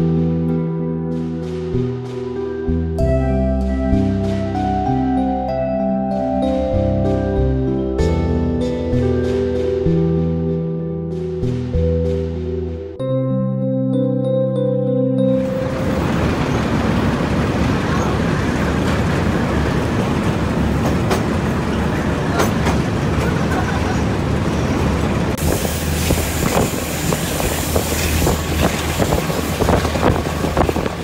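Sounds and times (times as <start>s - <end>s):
train rumble: 15.4s - 31.0s
wheels clicking over rail joints: 15.6s - 31.0s
hiss of rushing air: 25.4s - 31.0s.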